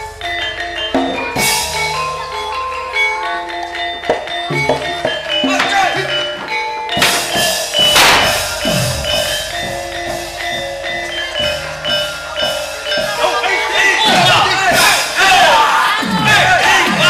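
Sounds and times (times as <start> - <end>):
metallophone notes: 0.0 - 17.0
drum strokes: 4.0 - 17.0
loud crash: 7.0 - 9.3
voices: 7.2 - 17.0.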